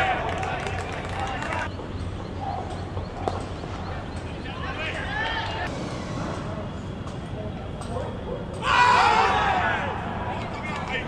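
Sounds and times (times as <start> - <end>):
players shouting: 0.0 - 1.7, 4.4 - 5.7, 8.6 - 11.0.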